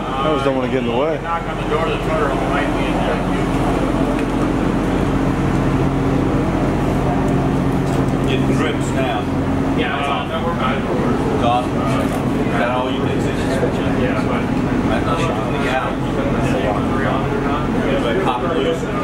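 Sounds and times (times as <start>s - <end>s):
constant background noise: 0.0s - 19.0s
steady mechanical hum: 0.0s - 19.0s.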